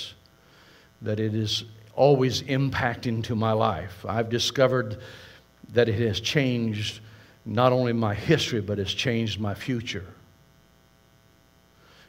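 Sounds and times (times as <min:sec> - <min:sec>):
faint mains hum: 0:00.0 - 0:12.0
man speaking: 0:01.0 - 0:05.0, 0:05.6 - 0:10.2.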